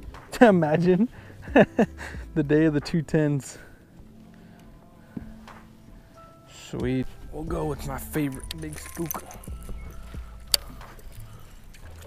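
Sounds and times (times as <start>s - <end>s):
water lapping at boat hull: 8.8s - 12.0s.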